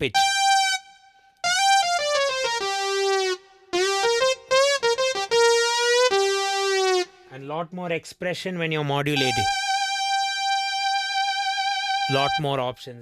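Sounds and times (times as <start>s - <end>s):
synth lead with pitch bends: 0.0s - 7.3s, 9.2s - 12.6s.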